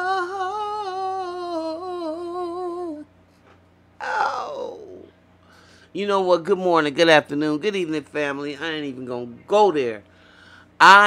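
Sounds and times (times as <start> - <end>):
woman humming: 0.0 - 3.1, 4.0 - 5.2.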